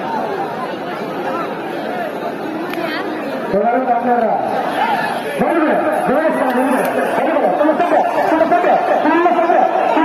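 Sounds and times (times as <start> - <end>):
crowd talking and calling out: 0.0 - 10.0
crowd shouting: 4.4 - 10.0.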